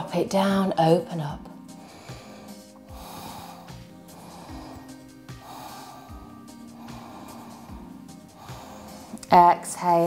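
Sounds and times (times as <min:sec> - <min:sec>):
soft background music: 0:00.0 - 0:10.0
person breathing slowly: 0:01.7 - 0:09.2.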